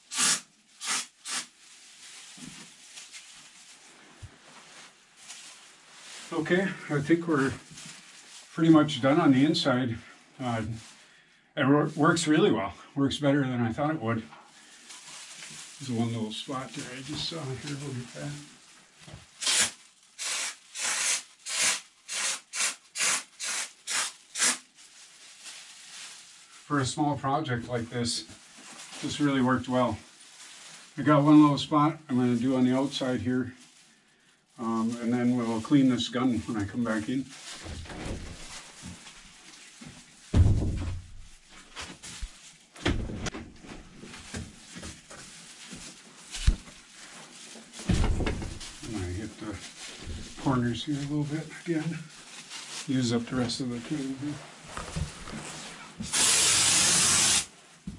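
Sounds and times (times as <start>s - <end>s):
spray foam gun hissing in spurts: 19.5s - 24.6s, 56.1s - 57.5s
hinged door opening and shutting: 47.9s - 48.6s
heavy bumps: 47.9s - 49.0s.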